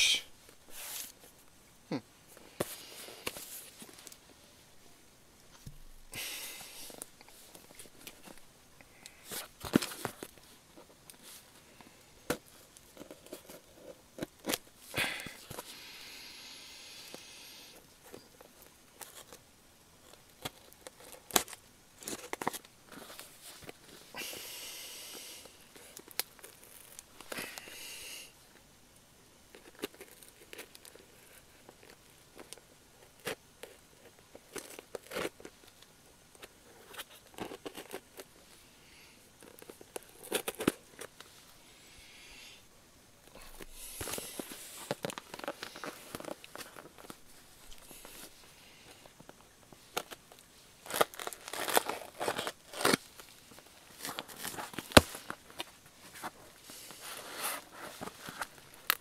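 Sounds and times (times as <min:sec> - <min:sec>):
hands handling objects: 0:02.3 - 0:04.4, 0:05.4 - 0:15.8, 0:39.4 - 0:41.5, 0:43.2 - 0:59.0
packaging rustling and tearing: 0:20.1 - 0:24.1, 0:29.6 - 0:35.8, 0:43.3 - 0:48.4, 0:49.0 - 0:59.0.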